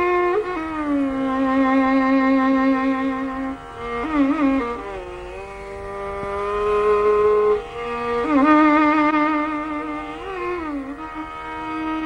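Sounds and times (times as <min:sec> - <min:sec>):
violin long bowed note: 0:00.0 - 0:12.0.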